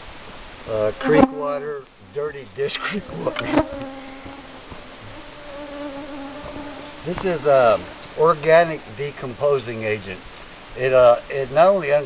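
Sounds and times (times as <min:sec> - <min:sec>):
flying insect buzzing: 0:00.7 - 0:09.3.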